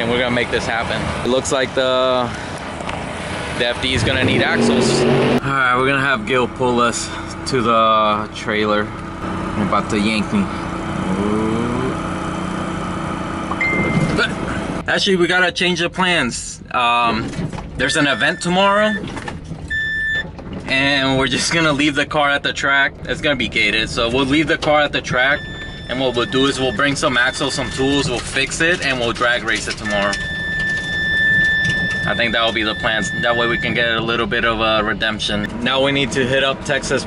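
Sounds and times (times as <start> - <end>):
car engine hum and rolling noise: 0.0 - 37.0
vehicle rumble from inside cabin: 5.6 - 15.6, 16.3 - 37.0
high-pitched whine: 9.7 - 14.6
high steady tone: 10.2 - 14.4.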